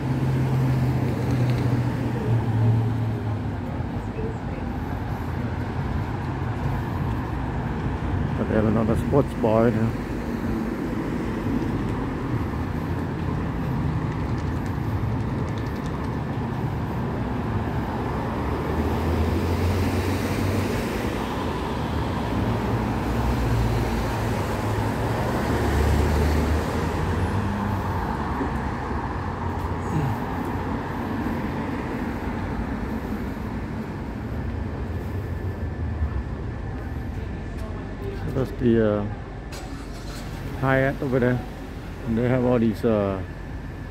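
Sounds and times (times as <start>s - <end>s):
passing cars rumble and hiss: 0.0s - 43.9s.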